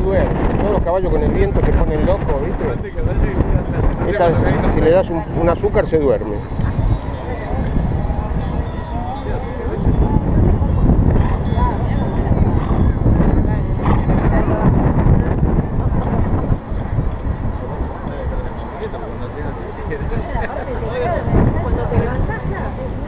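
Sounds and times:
faint voices: 0.0s - 23.0s
wind buffeting microphone: 0.0s - 23.0s.

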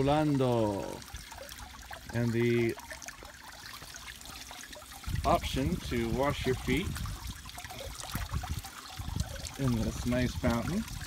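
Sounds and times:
water trickling in fountain basin: 0.0s - 11.0s.

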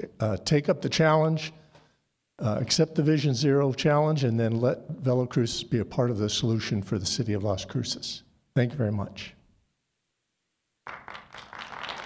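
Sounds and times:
people applauding: 10.8s - 12.0s.

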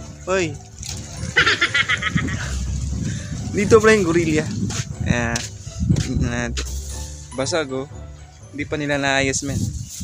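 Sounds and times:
wind rumble on microphone: 0.8s - 6.6s
person giggling: 1.4s - 2.6s.

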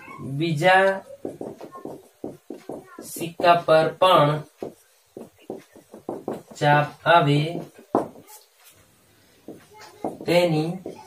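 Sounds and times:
marker writing on a whiteboard: 0.2s - 11.0s.

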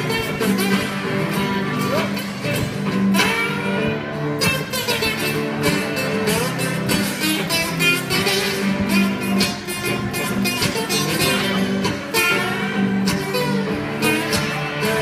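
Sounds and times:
acoustic guitars playing: 0.0s - 15.0s
electric guitar playing: 0.0s - 15.0s.

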